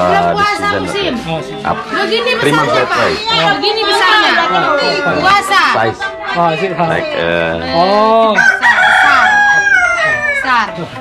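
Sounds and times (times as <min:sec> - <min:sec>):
rooster crowing: 0:08.3 - 0:10.7.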